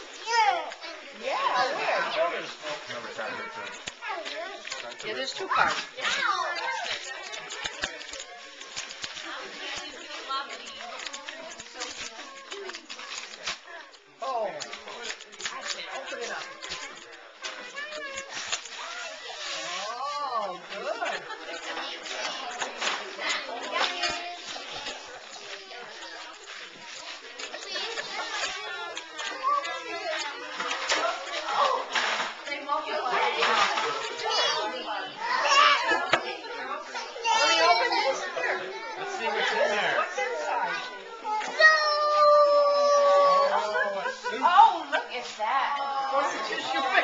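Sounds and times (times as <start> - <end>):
wrapping paper rustling and tearing: 0.0 - 34.6
children chattering: 0.0 - 47.0.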